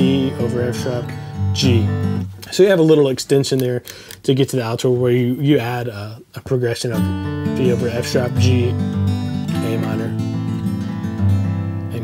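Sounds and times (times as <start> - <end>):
fingerpicked acoustic guitar: 0.0 - 2.4, 7.0 - 12.0.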